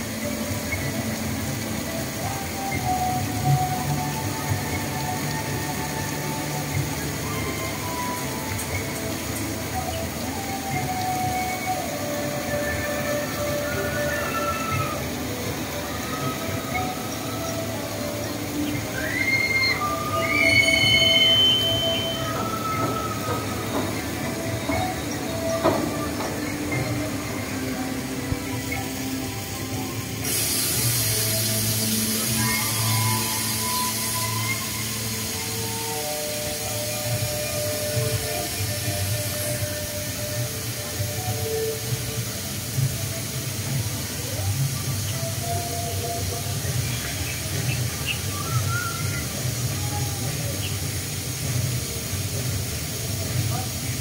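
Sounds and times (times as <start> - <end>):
ride metal creaking and squeaking: 0.0 - 50.6
hiss: 0.0 - 54.0.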